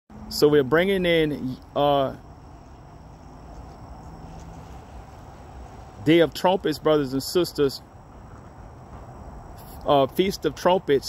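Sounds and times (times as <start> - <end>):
crickets trilling: 0.1 - 11.0.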